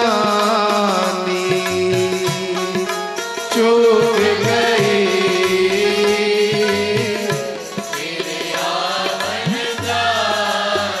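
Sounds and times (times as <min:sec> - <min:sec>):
harmonium drone: 0:00.0 - 0:11.0
tabla: 0:00.0 - 0:11.0.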